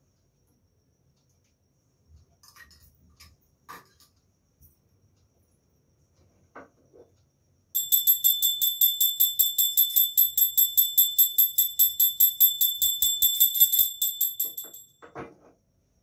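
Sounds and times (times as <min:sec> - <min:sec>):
handheld bell ringing rapidly: 0:07.8 - 0:14.9.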